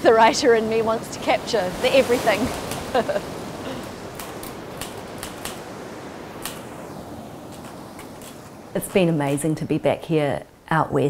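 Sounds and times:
steady rushing background: 0.0 - 9.3.

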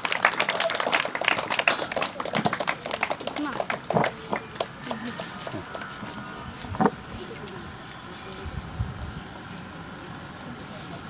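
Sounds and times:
crowd applauding: 0.0 - 6.0.

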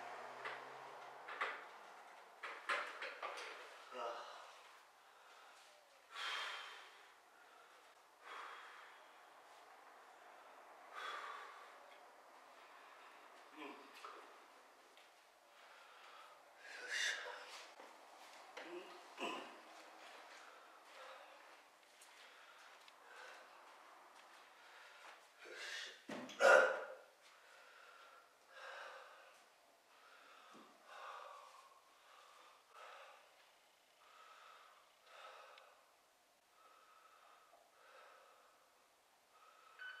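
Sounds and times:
man breathing hard: 3.4 - 14.4, 15.5 - 17.9, 19.4 - 26.1, 27.2 - 39.8.

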